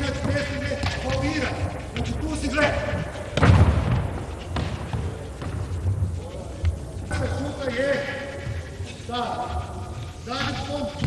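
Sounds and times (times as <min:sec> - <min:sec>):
handball thud echoing in hall: 0:00.0 - 0:11.0.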